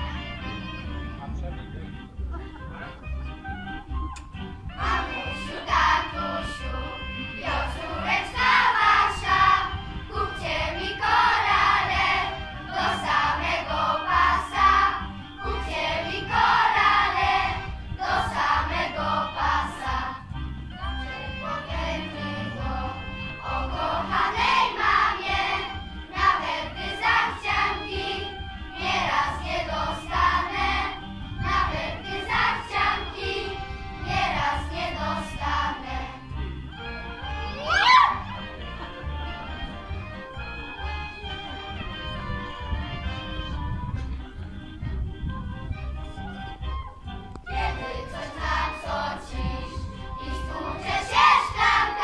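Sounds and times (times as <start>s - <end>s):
girls choir singing: 4.8s - 36.2s, 47.5s - 52.0s.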